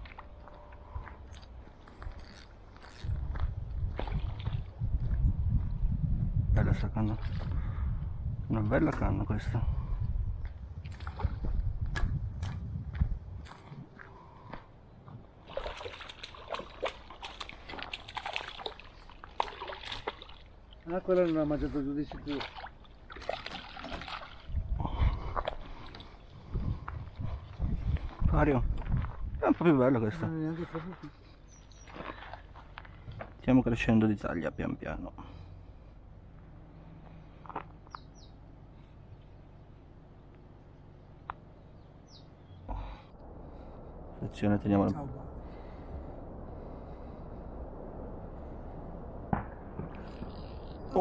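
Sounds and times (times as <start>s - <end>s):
dull low thumps: 3.2s - 14.0s, 26.4s - 29.6s, 42.7s - 50.5s
water splashing and sloshing: 3.8s - 5.1s, 6.9s - 7.8s, 10.8s - 12.6s, 15.2s - 28.2s, 30.5s - 33.4s
low outdoor rumble: 24.1s - 51.0s.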